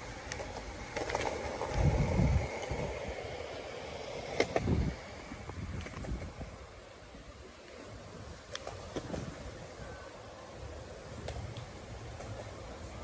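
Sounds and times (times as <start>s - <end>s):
traffic hum: 0.0s - 13.0s.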